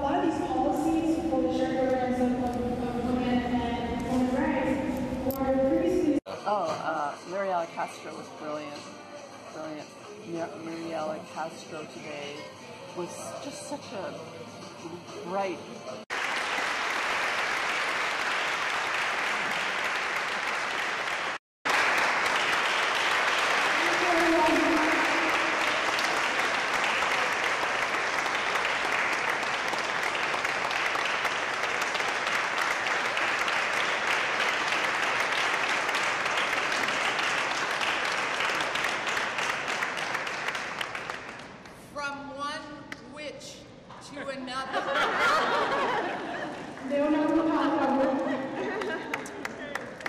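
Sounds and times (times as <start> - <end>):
audience applauding: 16.1 - 41.6, 47.6 - 50.0.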